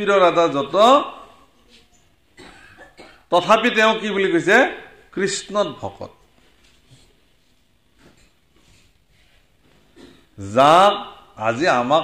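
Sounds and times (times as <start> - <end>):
man speaking: 0.0 - 1.4, 3.3 - 6.2, 10.4 - 12.0
quiet cough: 2.3 - 3.3, 8.0 - 8.5, 9.8 - 10.4.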